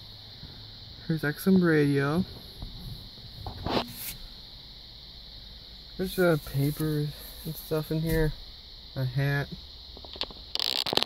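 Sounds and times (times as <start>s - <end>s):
insects chirring: 0.0s - 11.0s
soft rustle: 2.2s - 4.4s.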